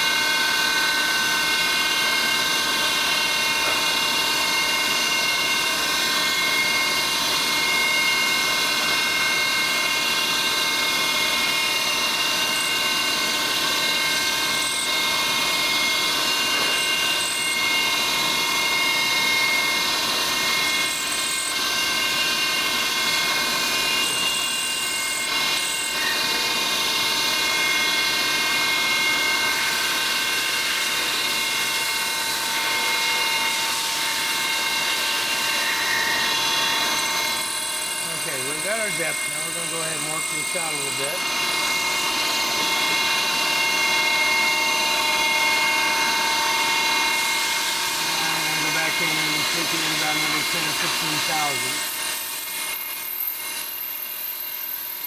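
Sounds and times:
milling machine spindle whine: 0.0 - 55.0
hiss of metal cutting: 47.3 - 52.5.

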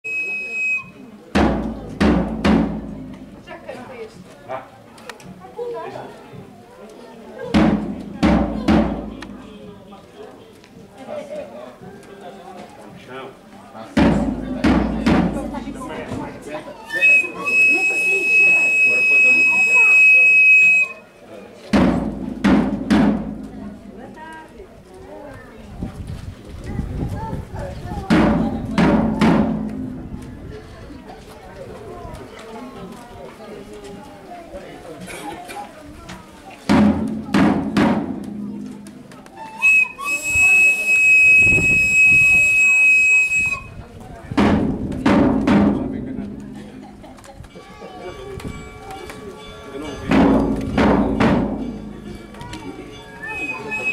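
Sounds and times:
high whistle-like tone: 0.0 - 1.0, 16.9 - 21.1, 39.4 - 43.8, 53.1 - 53.9
crowd voices: 0.0 - 53.9
bass drum hit: 1.4 - 3.5, 7.6 - 9.5, 14.0 - 15.9, 21.8 - 23.8, 28.1 - 30.1, 36.7 - 38.7, 44.4 - 47.0.

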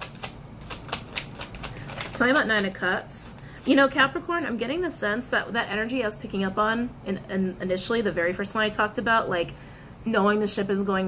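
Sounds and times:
cards being shuffled: 0.0 - 2.8.

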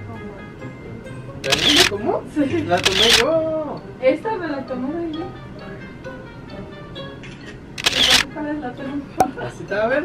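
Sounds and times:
background music: 0.0 - 10.0
camera shutter: 1.4 - 2.0, 2.8 - 3.3, 7.4 - 8.3.

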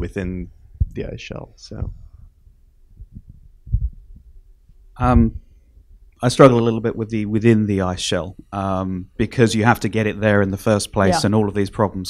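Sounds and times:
faint steady hum: 0.0 - 12.0
soft low thumps: 0.7 - 6.0.

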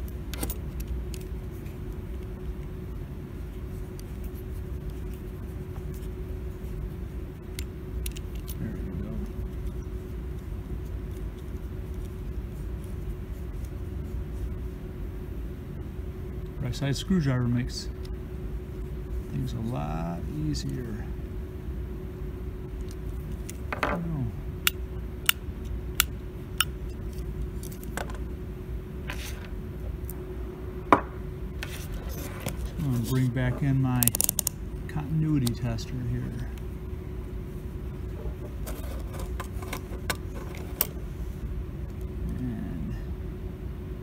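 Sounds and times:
low background hum: 0.0 - 44.0.

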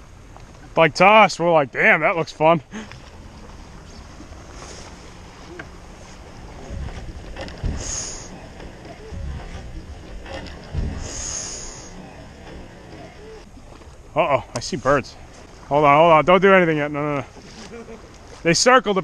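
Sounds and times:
water swishes: 0.0 - 19.0
waves lapping around a kayak: 0.0 - 19.0
wind: 0.0 - 19.0.

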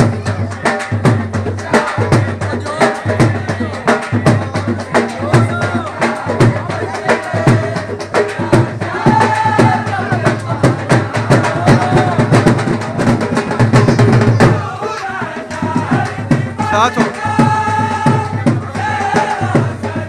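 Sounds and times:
fast drum beat: 0.0 - 20.0.

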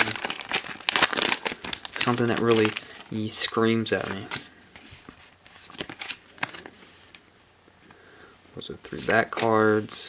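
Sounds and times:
trading cards flicking and rustling: 3.4 - 7.2.

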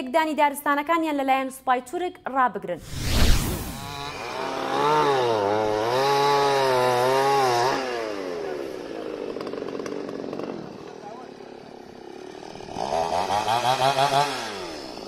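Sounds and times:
chainsaw cutting wood: 3.7 - 15.0.

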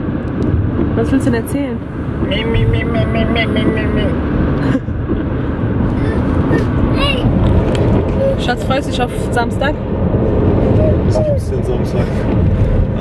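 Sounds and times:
car road and engine rumble: 0.0 - 13.0
small child babbling: 6.0 - 7.4, 8.1 - 8.4, 10.8 - 11.5.

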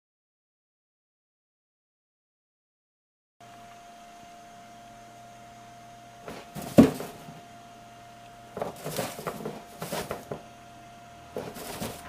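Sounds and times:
paws scuffling on hay and plastic: 6.3 - 7.4, 8.6 - 10.4, 11.3 - 12.0
rabbit thump: 6.3 - 7.4, 8.5 - 10.4, 11.3 - 12.0.

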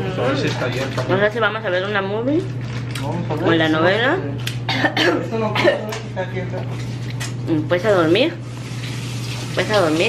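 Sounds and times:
woman coughing: 4.7 - 5.9.

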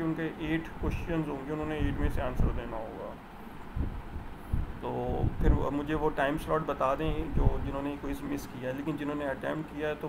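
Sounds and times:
man speaking: 0.0 - 3.2, 4.8 - 10.0
faint hum: 0.0 - 10.0
short low thumps: 3.7 - 5.7.

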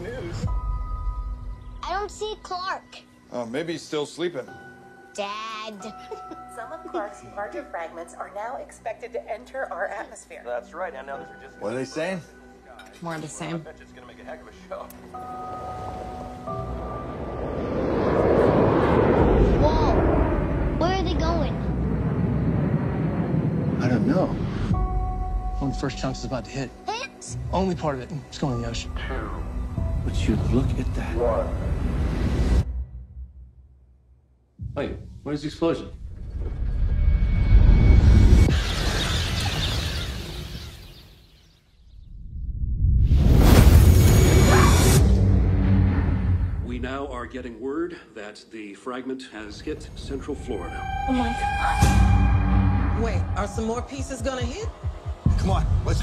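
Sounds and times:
trailer music held notes: 0.0 - 12.6, 13.2 - 39.4, 41.7 - 47.8, 49.4 - 56.0
jet aircraft roaring overhead: 15.6 - 24.9
deep impact rumble: 16.7 - 25.6.

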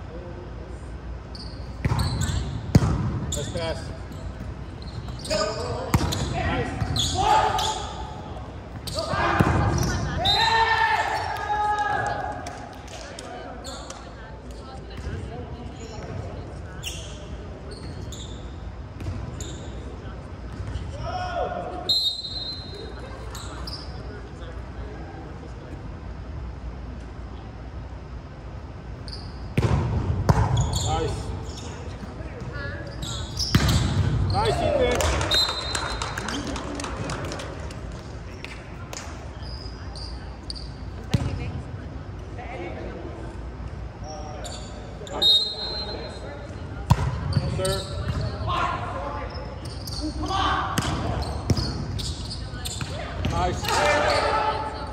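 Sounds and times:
volleyball slaps: 2.7 - 3.2, 29.6 - 30.6, 33.4 - 34.2, 34.8 - 39.2, 46.8 - 47.5, 50.7 - 51.8
players shouting: 5.2 - 12.4, 34.3 - 35.4, 52.9 - 54.9.

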